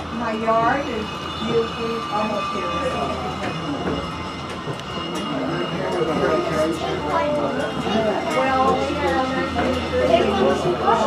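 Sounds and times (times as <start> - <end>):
railway car low rumble: 0.0 - 11.0.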